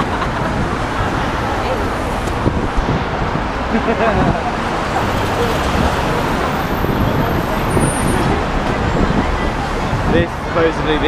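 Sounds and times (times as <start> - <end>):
city traffic rumble: 0.0 - 11.0
faint voices of pedestrians: 0.0 - 11.0.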